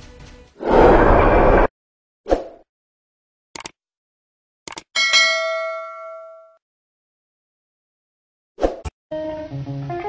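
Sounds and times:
bright bell chime: 0:05.0 - 0:06.6.

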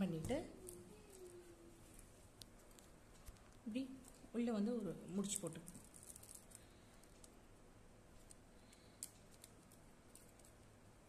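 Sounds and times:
plastic wire clicking and rustling: 0:00.2 - 0:04.3, 0:05.1 - 0:07.4, 0:08.2 - 0:10.8.

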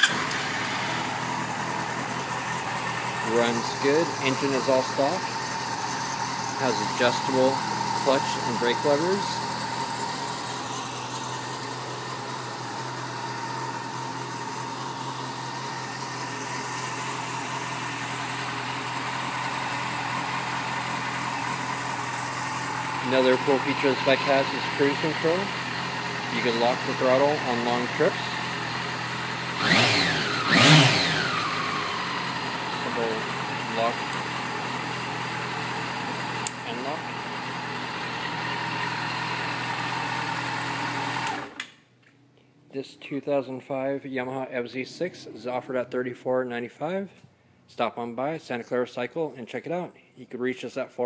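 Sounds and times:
motorcycle engine idling: 0:00.0 - 0:41.6.

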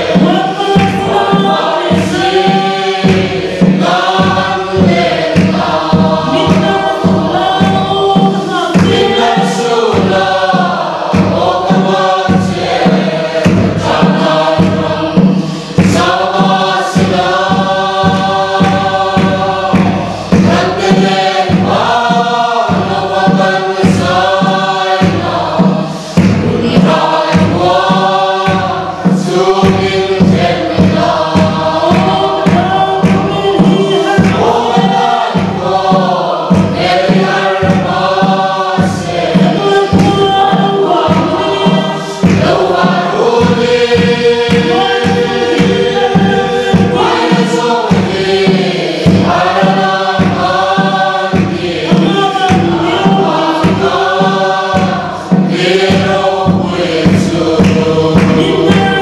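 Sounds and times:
group singing a gospel hymn: 0:00.0 - 0:59.0
steady drumbeat: 0:00.0 - 0:59.0.

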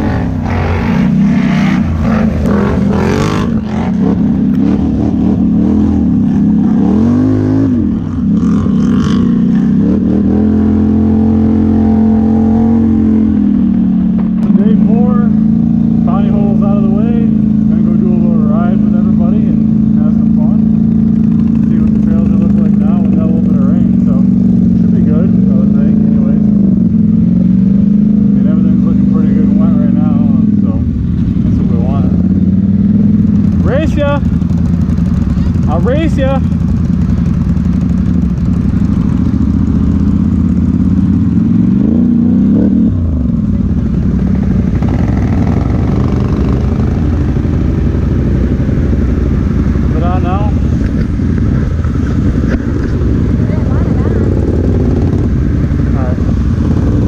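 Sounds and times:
atv engines idling and revving: 0:00.0 - 0:57.0.

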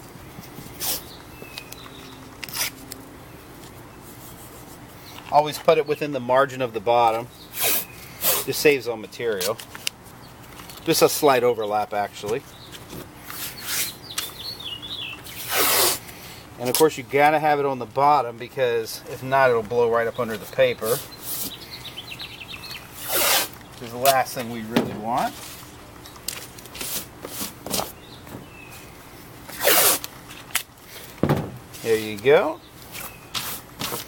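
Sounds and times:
handling of tape and paper: 0:00.4 - 0:05.8, 0:09.3 - 0:11.2, 0:12.2 - 0:14.4, 0:15.2 - 0:17.0, 0:22.7 - 0:28.9, 0:29.5 - 0:34.0
tape ripping off roll: 0:02.4 - 0:03.0, 0:15.3 - 0:16.1, 0:23.0 - 0:23.6, 0:29.5 - 0:31.9
hands rubbing tape onto paper: 0:15.3 - 0:16.1, 0:23.0 - 0:23.6.

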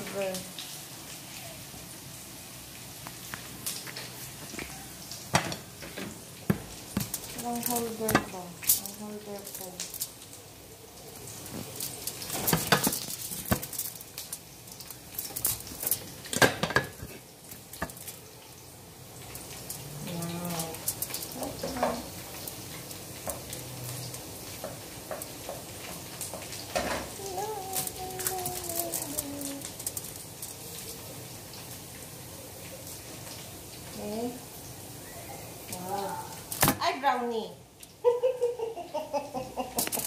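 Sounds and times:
oil sizzling in a wok: 0:00.0 - 0:40.0
utensils knocking against pan: 0:08.0 - 0:08.4.

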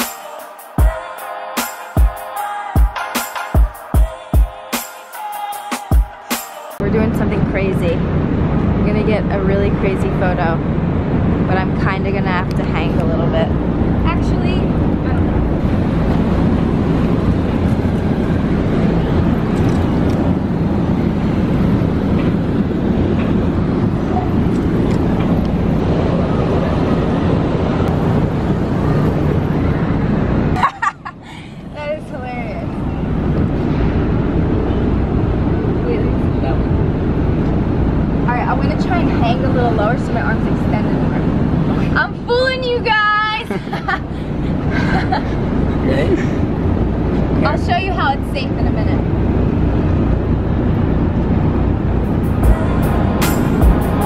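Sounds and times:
woman's voice: 0:06.8 - 0:08.1, 0:08.8 - 0:10.6, 0:11.5 - 0:14.8, 0:31.7 - 0:32.8, 0:38.2 - 0:41.2, 0:41.8 - 0:43.6, 0:47.4 - 0:49.1.

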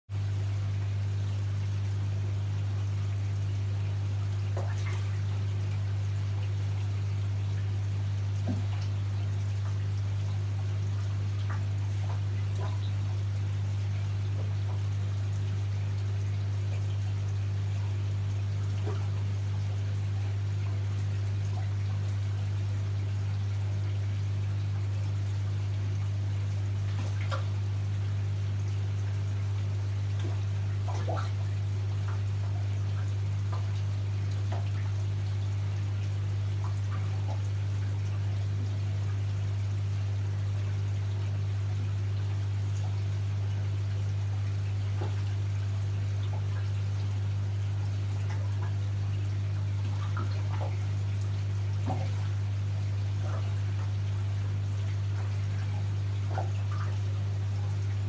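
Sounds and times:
steady low hum: 0:00.1 - 0:58.0
water trickling: 0:00.2 - 0:58.0.

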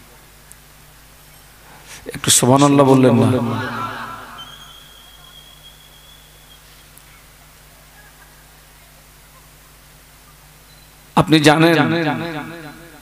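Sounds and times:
faint low hum: 0:00.0 - 0:11.2
preacher's voice echoing: 0:01.9 - 0:04.5, 0:11.2 - 0:13.0
thin high whistle-like tone: 0:04.2 - 0:07.2, 0:10.6 - 0:11.1.

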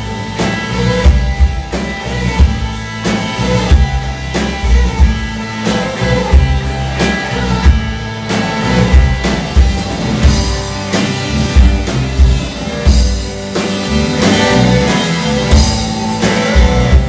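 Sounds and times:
drum hits: 0:00.0 - 0:17.0
rock band playing: 0:00.0 - 0:17.0.

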